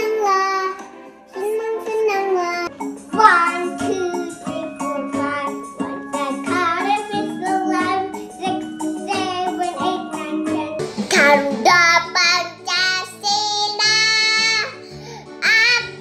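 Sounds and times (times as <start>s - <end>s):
accompanying music: 0.0s - 16.0s
children singing: 11.1s - 12.2s.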